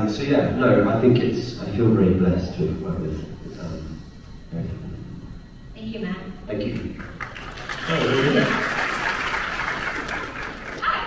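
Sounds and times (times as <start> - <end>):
audience applauding: 7.0 - 11.0.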